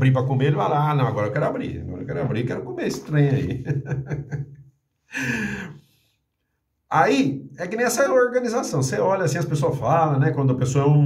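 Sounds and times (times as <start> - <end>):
man's short breathy laugh: 5.1 - 5.8.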